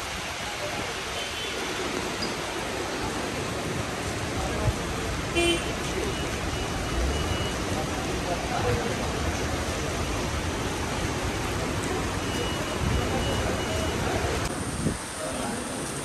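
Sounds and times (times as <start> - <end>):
heavy rain hissing: 0.0 - 16.0.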